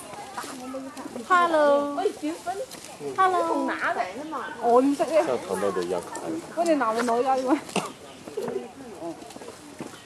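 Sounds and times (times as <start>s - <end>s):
faint chatter of voices: 0.0s - 10.0s.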